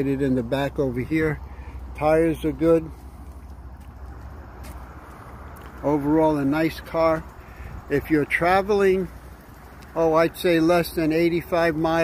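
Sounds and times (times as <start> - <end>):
wind buffeting microphone: 3.4 - 10.2.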